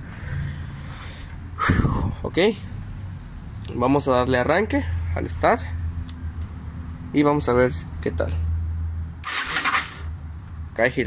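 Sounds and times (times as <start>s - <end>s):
electric starter cranking engine: 9.2s - 10.1s.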